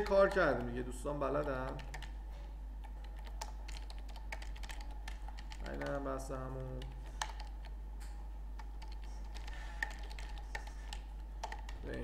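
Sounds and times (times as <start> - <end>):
steady low hum: 0.0 - 12.0
keyboard keystrokes: 1.6 - 2.1, 2.8 - 6.0, 8.6 - 11.9.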